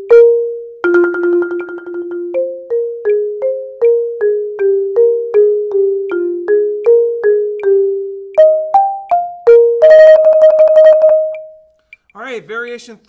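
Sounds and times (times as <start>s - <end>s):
marimba played with mallets: 0.0s - 11.6s.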